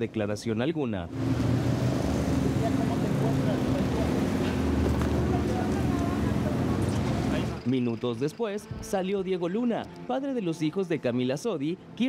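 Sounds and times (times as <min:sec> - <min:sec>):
car engines running: 0:01.1 - 0:07.7
crowd of voices: 0:02.3 - 0:07.7.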